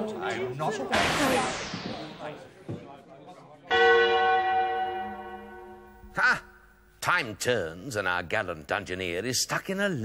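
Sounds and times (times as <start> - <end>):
deep bell ringing: 3.7 - 6.0.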